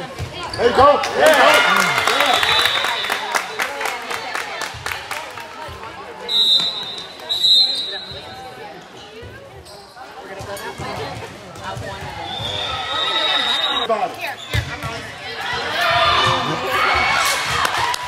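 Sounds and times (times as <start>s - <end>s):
crowd chatter: 0.0s - 18.0s
referee whistle blasts: 2.2s - 3.4s, 6.3s - 8.3s, 12.2s - 13.9s.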